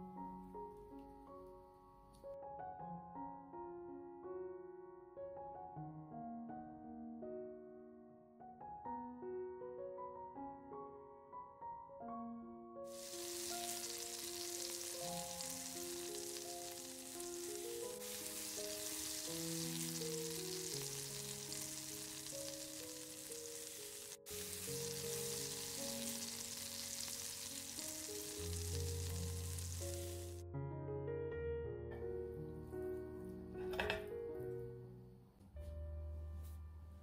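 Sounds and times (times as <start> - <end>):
soft piano music: 0.0 - 37.0
pancake sizzling in a pan: 12.9 - 30.4.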